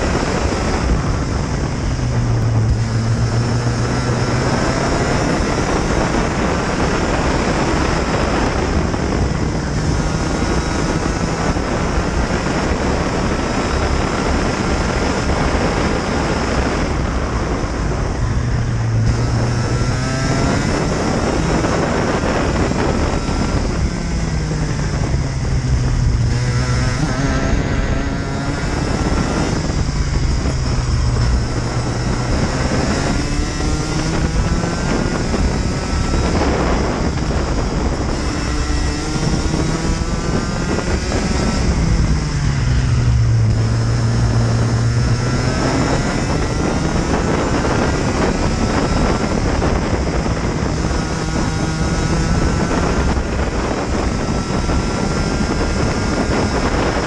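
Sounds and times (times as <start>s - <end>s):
kart engine revving: 0.0s - 57.0s
wind buffeting microphone: 0.0s - 57.0s.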